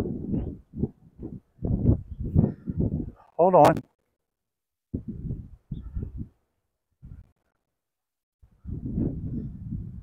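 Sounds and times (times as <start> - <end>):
wind buffeting microphone: 0.0 - 3.8, 4.9 - 7.3, 8.4 - 10.0.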